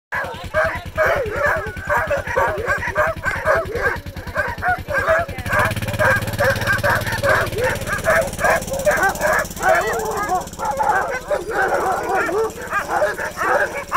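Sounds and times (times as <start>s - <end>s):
dogs barking and yipping: 0.2s - 13.9s.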